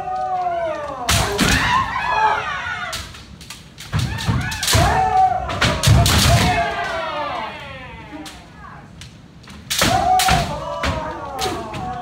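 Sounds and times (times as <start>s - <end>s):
people shouting: 0.0s - 3.2s, 3.9s - 8.9s, 9.7s - 12.0s
bamboo sword strikes cracking: 3.0s - 6.6s, 9.5s - 11.7s.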